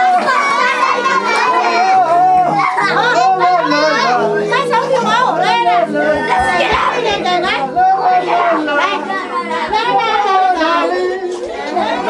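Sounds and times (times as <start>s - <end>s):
children shouting and chattering: 0.0s - 12.0s.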